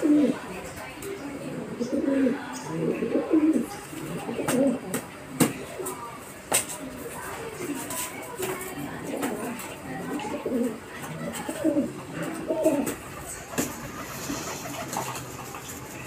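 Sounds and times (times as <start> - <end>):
pigeons cooing: 0.0 - 0.6, 1.2 - 5.0, 8.8 - 16.0.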